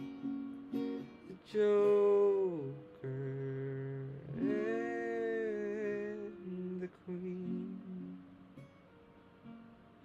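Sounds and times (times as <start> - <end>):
young man humming: 1.4 - 8.2.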